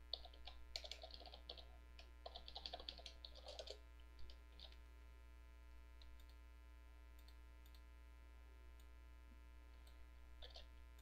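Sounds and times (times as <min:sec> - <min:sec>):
faint keyboard typing: 0:00.0 - 0:04.9, 0:06.0 - 0:06.4, 0:07.1 - 0:07.9, 0:09.7 - 0:11.0.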